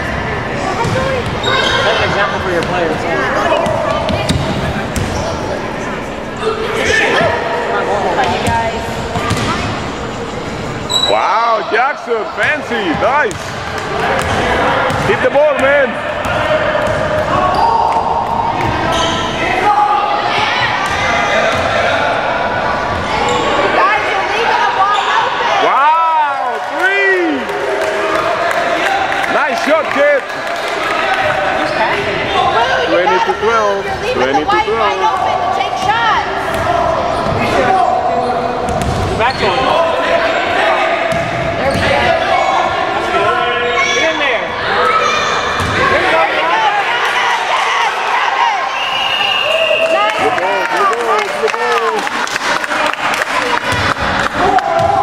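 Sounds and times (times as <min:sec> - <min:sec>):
sneaker squeaks: 0:00.8 - 0:02.7, 0:03.5 - 0:05.7, 0:09.2 - 0:11.2, 0:16.8 - 0:18.0, 0:18.6 - 0:19.4, 0:24.8 - 0:25.3, 0:36.5 - 0:39.8, 0:41.1 - 0:42.6.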